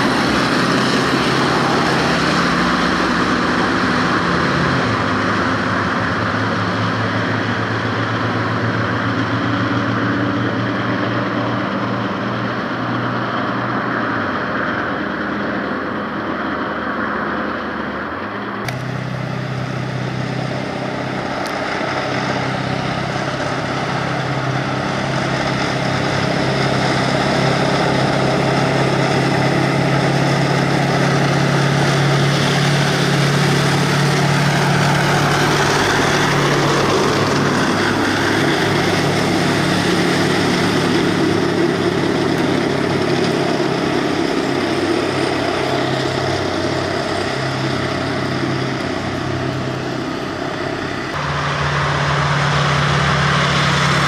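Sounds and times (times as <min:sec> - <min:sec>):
diesel engine running: 0:00.0 - 0:54.0
tracks rattling on tarmac: 0:00.0 - 0:54.0.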